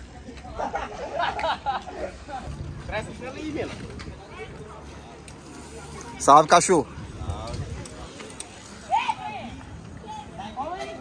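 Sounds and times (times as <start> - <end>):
outdoor street background: 0.0 - 11.0.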